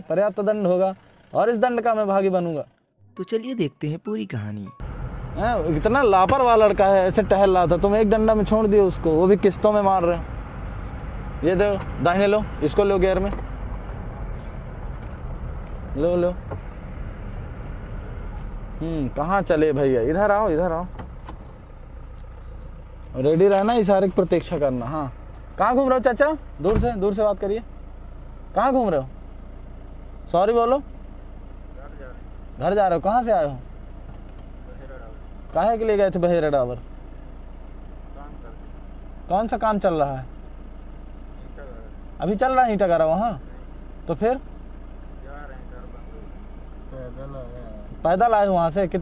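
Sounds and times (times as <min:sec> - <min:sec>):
vehicle engine rumble: 0:00.0 - 0:03.0, 0:04.8 - 0:49.0.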